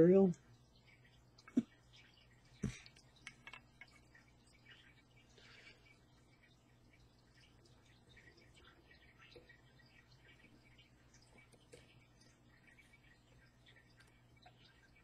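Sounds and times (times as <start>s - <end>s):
low steady hum: 0.0s - 15.0s
small ticks: 0.4s - 15.0s.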